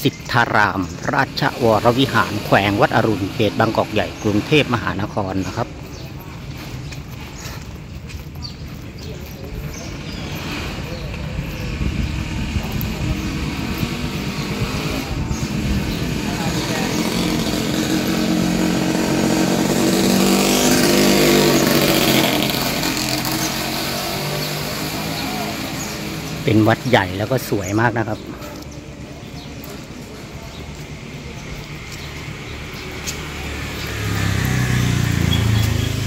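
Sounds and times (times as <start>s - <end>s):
vehicle engine passing by: 9.0s - 36.0s.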